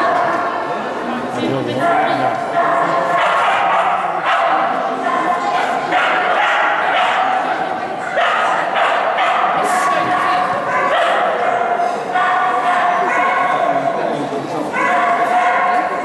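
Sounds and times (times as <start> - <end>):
dog barking and yipping: 1.9 - 7.4, 8.1 - 13.6, 14.8 - 16.0.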